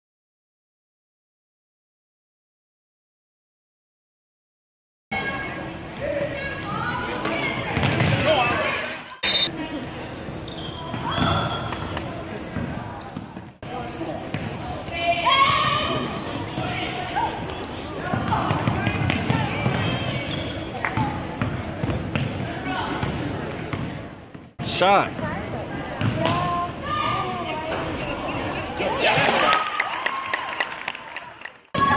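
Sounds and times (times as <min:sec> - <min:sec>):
voices echoing in a gym: 0:05.1 - 0:29.7.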